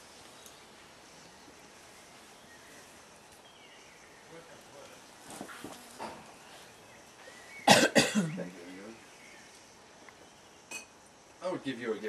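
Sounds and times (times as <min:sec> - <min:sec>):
person coughing loudly: 0:07.7 - 0:08.4.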